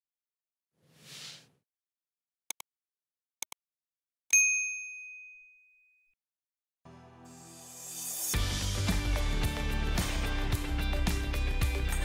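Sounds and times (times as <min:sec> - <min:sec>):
bell-like chime ding: 0:04.3 - 0:06.1.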